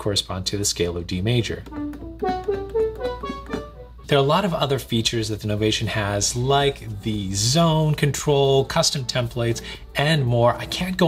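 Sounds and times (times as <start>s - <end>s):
synthesizer notes climbing a scale: 1.3s - 7.8s.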